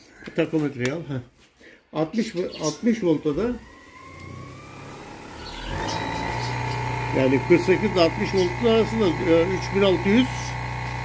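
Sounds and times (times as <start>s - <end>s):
electric motor whine: 2.4s - 11.0s.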